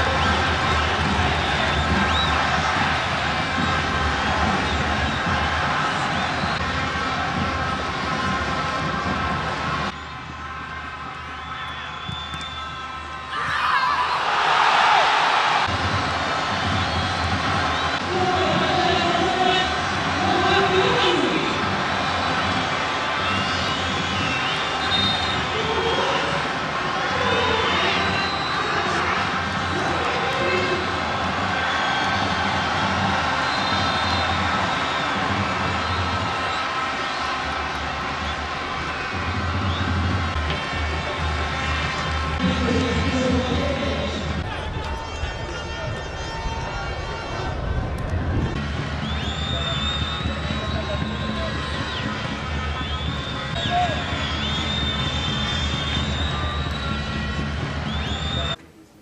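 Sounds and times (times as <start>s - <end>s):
crowd cheering: 0.0s - 58.6s
stadium crowd drone: 0.0s - 59.0s.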